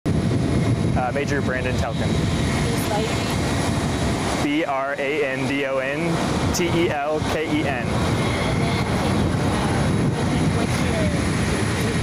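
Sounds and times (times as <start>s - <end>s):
jet engine rushing: 0.1s - 12.0s.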